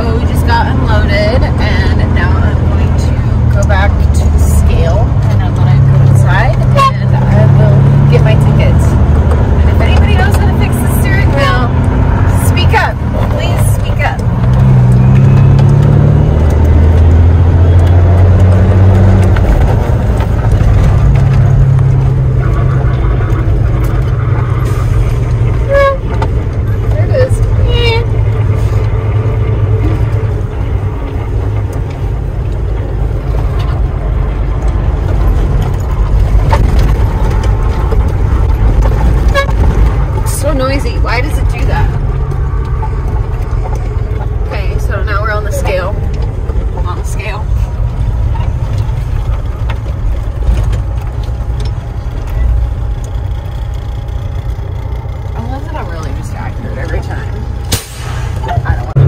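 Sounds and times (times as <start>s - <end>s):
truck diesel engine droning: 0.0s - 59.0s
short squeaks: 24.5s - 26.9s.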